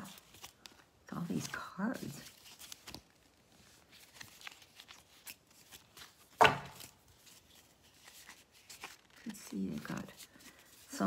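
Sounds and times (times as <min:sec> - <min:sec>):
paper cards flicking and rustling: 0:00.0 - 0:11.0.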